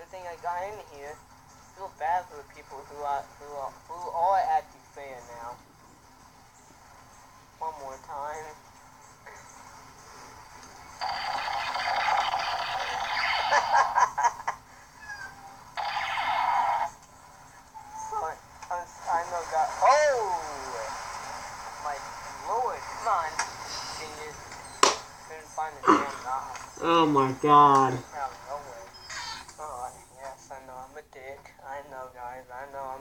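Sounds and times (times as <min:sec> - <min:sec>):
voices: 0:00.0 - 0:33.0.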